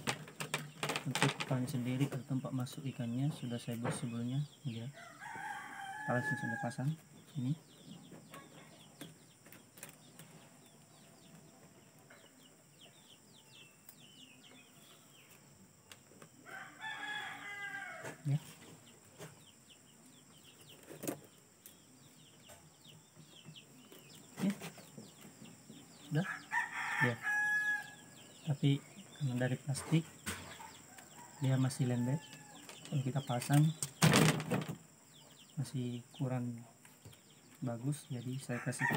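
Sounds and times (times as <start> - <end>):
rooster crowing: 4.9 - 7.0, 16.4 - 18.3, 26.2 - 28.2, 38.5 - 38.9.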